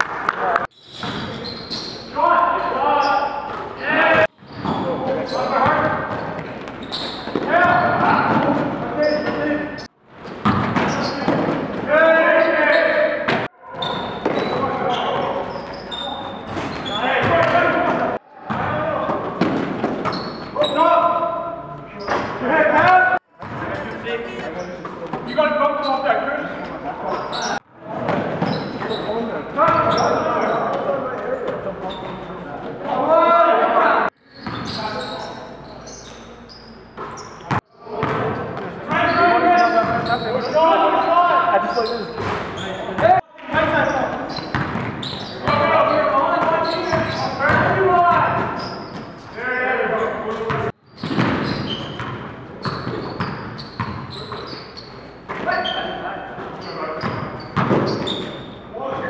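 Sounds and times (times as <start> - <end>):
basketball bouncing on floor: 10.4 - 11.6.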